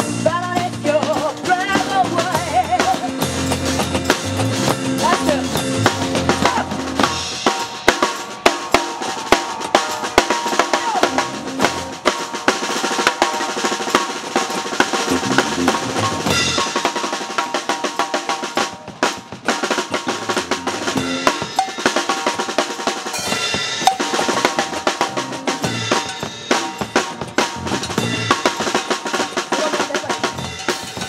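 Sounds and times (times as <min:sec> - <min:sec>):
person singing: 0:00.0 - 0:03.2
drumming on plastic buckets: 0:00.0 - 0:23.0
drum kit playing fast fills: 0:00.0 - 0:31.0
bass notes: 0:01.8 - 0:07.4, 0:11.0 - 0:12.0, 0:15.0 - 0:16.7, 0:20.0 - 0:21.5, 0:24.2 - 0:28.5.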